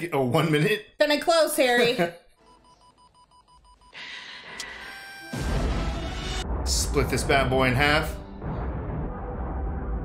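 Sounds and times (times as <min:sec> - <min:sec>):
faint electronic beep: 0:02.4 - 0:04.0.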